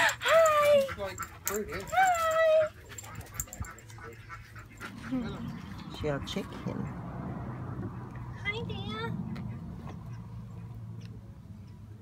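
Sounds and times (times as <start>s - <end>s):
dog panting: 0.0s - 10.8s.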